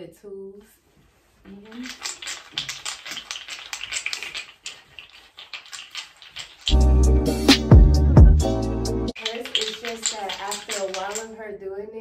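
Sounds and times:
wooden beads clicking: 1.5s - 6.8s, 9.1s - 11.4s.

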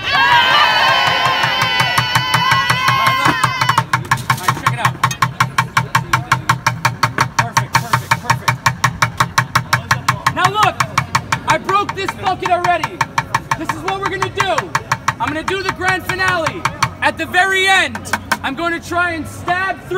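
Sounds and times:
crowd cheering and shrieking: 0.0s - 3.9s
fast drumming on plastic buckets: 1.0s - 19.6s.

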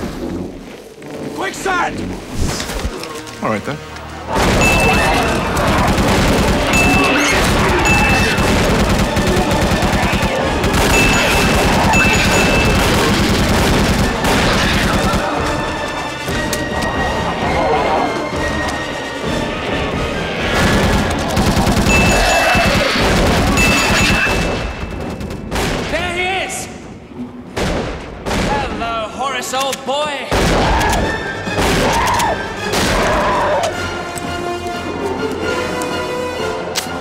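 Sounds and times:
orchestral score: 0.0s - 25.0s, 29.4s - 37.0s
gunfire volleys: 4.3s - 15.5s.

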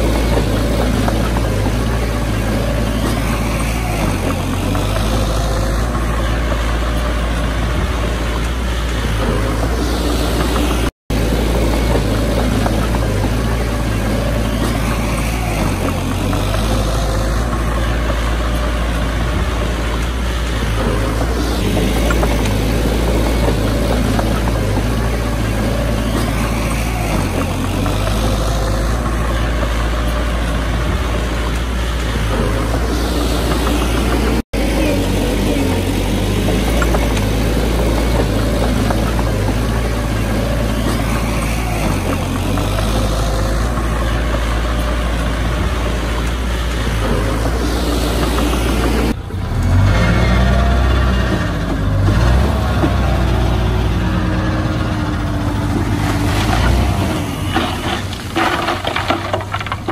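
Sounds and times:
bulldozer diesel engine under load: 0.0s - 59.9s.

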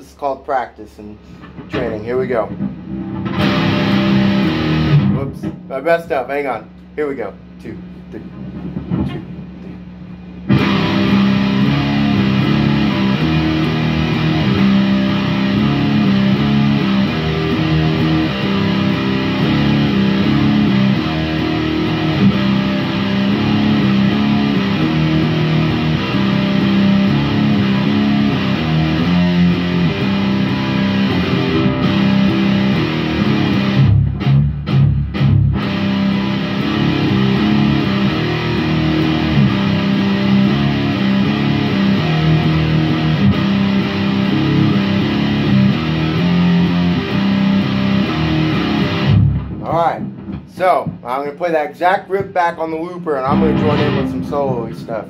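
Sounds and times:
electric guitar riff: 1.2s - 51.2s, 52.1s - 55.0s.

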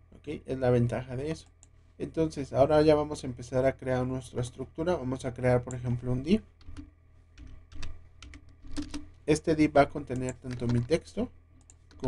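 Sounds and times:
computer keyboard typing: 6.6s - 9.1s, 10.1s - 10.9s.

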